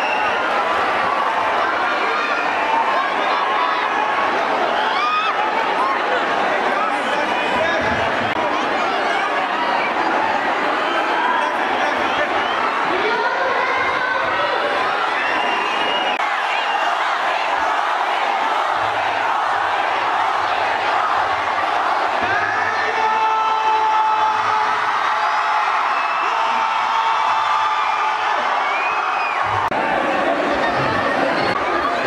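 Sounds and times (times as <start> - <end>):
crowd cheering and shouting: 0.0 - 32.0.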